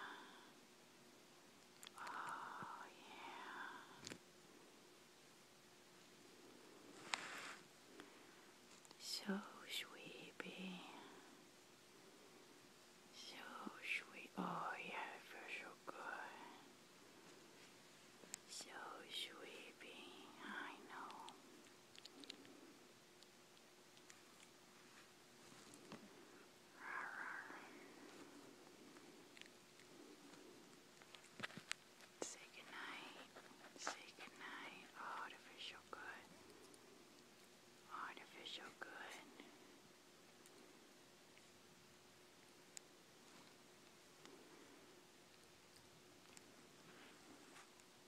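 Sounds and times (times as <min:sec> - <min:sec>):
soft whispering: 0:00.0 - 0:00.6, 0:01.8 - 0:04.8, 0:05.9 - 0:41.6, 0:42.5 - 0:48.0.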